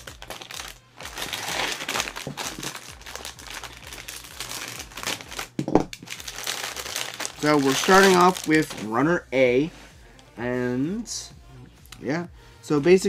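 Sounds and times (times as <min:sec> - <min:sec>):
plastic bag crinkling: 0:00.0 - 0:08.9.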